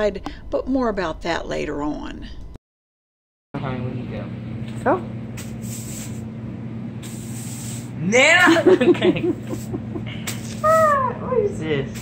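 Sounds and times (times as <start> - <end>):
steady low hum: 0.0 - 2.6, 3.6 - 12.0
broom sweeping concrete floor: 5.4 - 6.3, 7.0 - 11.0.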